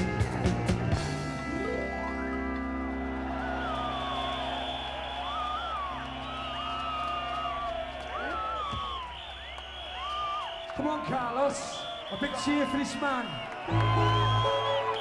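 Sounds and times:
crowd cheering and whistling: 0.0 - 15.0.

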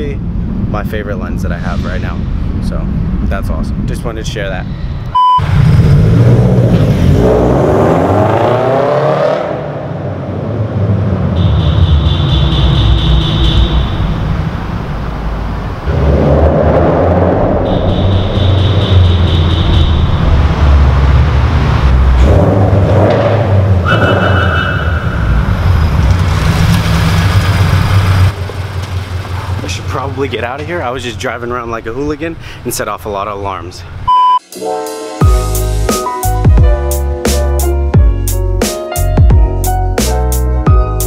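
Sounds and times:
car engine revving: 5.4 - 30.8.

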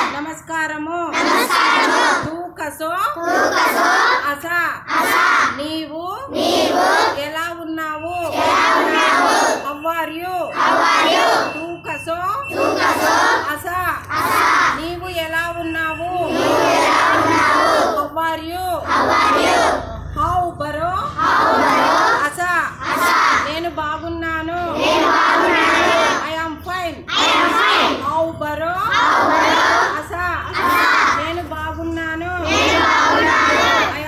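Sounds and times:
woman speaking: 0.0 - 1.3, 2.2 - 3.2, 4.2 - 4.9, 5.5 - 6.3, 7.1 - 8.4, 9.6 - 10.6, 11.4 - 12.6, 13.4 - 14.2, 14.8 - 16.4, 18.0 - 18.9, 20.0 - 21.2, 22.1 - 22.8, 23.4 - 24.8, 26.2 - 27.1, 28.0 - 29.0, 29.8 - 32.7, 33.7 - 34.0
children shouting in unison: 1.2 - 2.3, 3.3 - 4.2, 6.4 - 7.2, 8.4 - 9.6, 10.6 - 11.4, 12.6 - 13.5, 14.2 - 14.8, 16.3 - 18.0, 18.9 - 19.8, 24.8 - 26.2, 27.1 - 28.0, 32.5 - 34.0.

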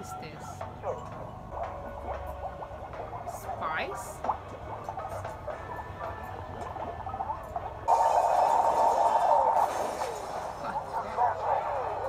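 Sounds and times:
loud rushing noise: 7.9 - 12.0.

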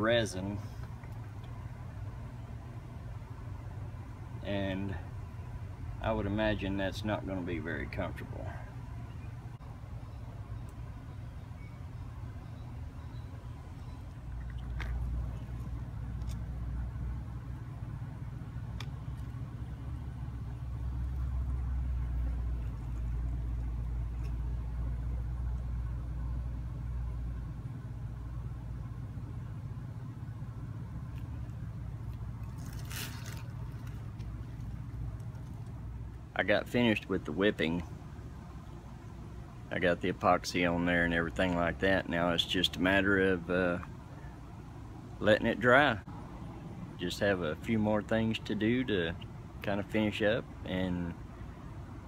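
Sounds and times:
paving machinery engine rumble: 0.0 - 51.5.

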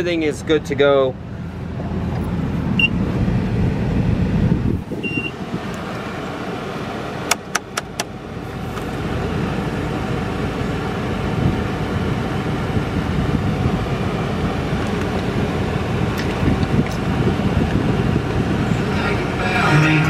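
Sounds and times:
van engine rumble: 0.0 - 20.0
short beep: 5.0 - 5.3.

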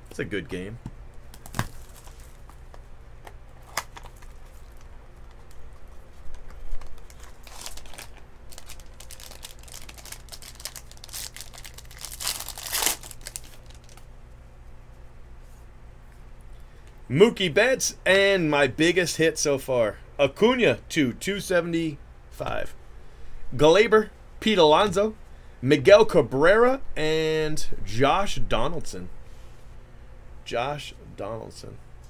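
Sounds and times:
foil wrapper tearing and crinkling: 1.3 - 2.6, 3.6 - 14.1.

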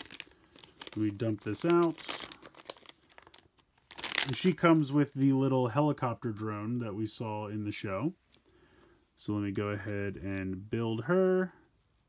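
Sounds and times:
plastic packet crinkling: 0.0 - 5.4.

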